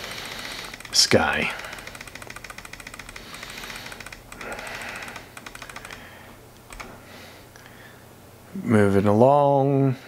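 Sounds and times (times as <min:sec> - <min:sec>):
mouse scroll wheel clicking: 0:00.0 - 0:06.1, 0:06.7 - 0:06.9.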